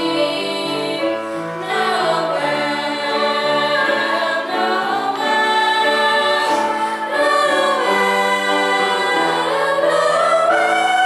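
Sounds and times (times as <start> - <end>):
youth choir singing: 0.0 - 11.0.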